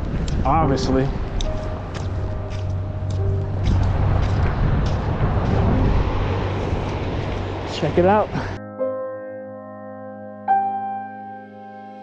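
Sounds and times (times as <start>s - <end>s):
wind rumbling on microphone: 0.0s - 8.6s
faint background music: 0.4s - 6.5s.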